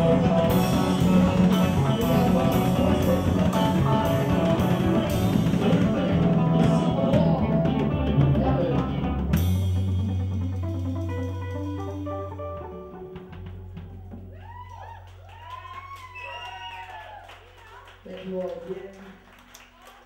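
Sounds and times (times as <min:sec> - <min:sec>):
electric guitar: 0:00.0 - 0:16.6
drum kit: 0:00.0 - 0:16.8
bass guitar: 0:00.0 - 0:17.2.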